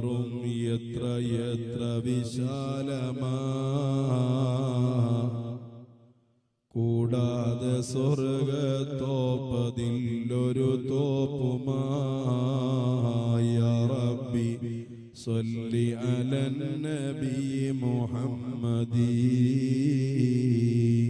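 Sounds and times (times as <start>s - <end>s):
melodic devotional chanting: 0.0s - 21.0s.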